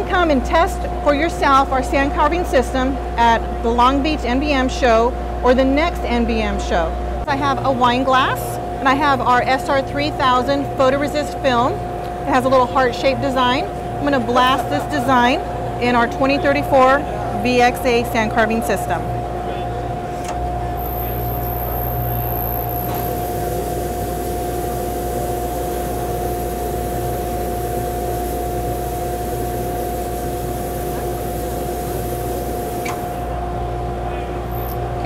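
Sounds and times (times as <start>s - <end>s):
steady machine hum: 0.0s - 35.0s.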